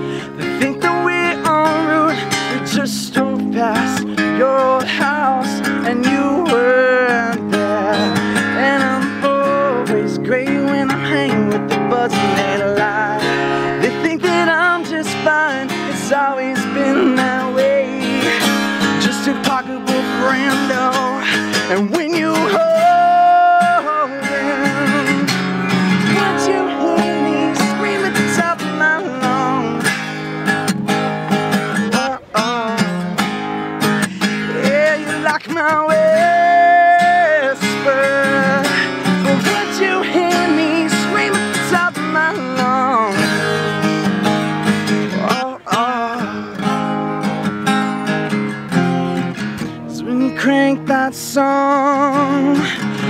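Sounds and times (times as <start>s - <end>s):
man singing: 0.0s - 30.3s, 31.6s - 47.4s, 49.6s - 53.0s
strummed acoustic guitar: 0.0s - 53.0s.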